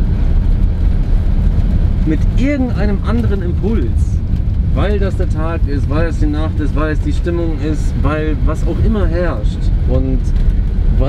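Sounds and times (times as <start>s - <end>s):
van engine and road rumble: 0.0s - 11.0s.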